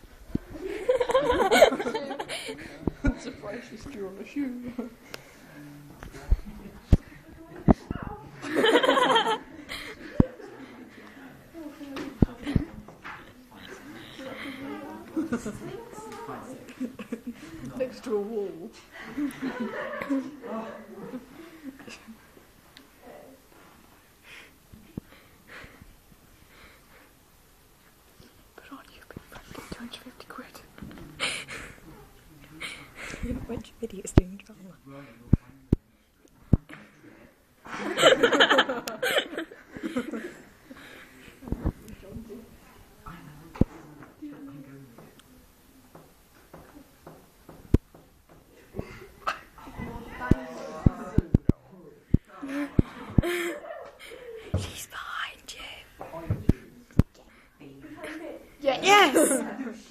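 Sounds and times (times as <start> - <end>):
people whispering: 9.6 - 19.4, 28.2 - 37.4, 48.7 - 59.4
person whispering: 54.7 - 56.1.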